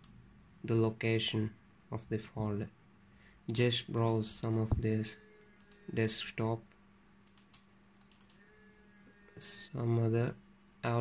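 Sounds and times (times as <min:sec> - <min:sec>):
faint room hum: 0:00.0 - 0:11.0
computer clicks: 0:03.9 - 0:04.3, 0:05.6 - 0:05.9, 0:07.2 - 0:08.4.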